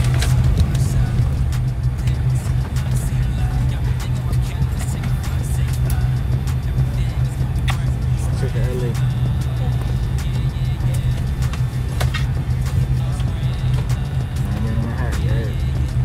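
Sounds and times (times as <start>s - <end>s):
airliner cabin drone: 0.0s - 16.0s
murmur of voices: 2.8s - 15.9s.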